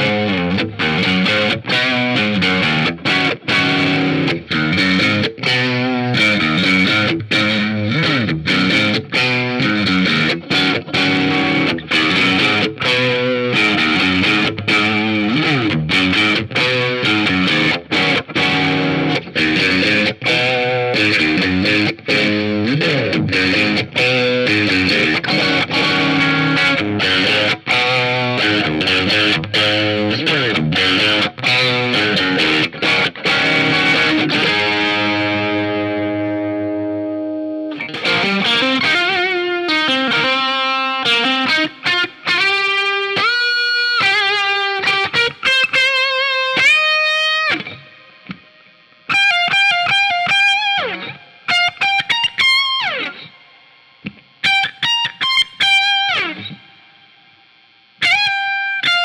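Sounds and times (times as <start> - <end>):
distorted electric guitar chords: 0.0 - 59.0
electric guitar lead line: 0.0 - 59.0.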